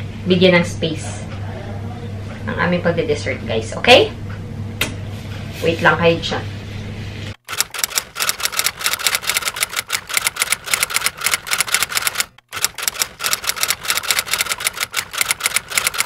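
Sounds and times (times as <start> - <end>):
typewriter keys clacking: 7.5 - 16.0.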